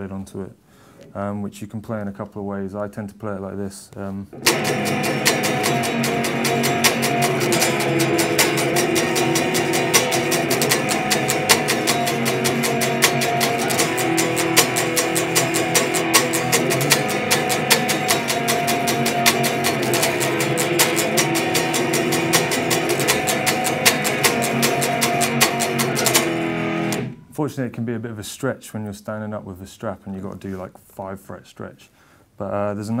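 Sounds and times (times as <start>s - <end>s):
electric guitar power chords: 4.4s - 27.4s.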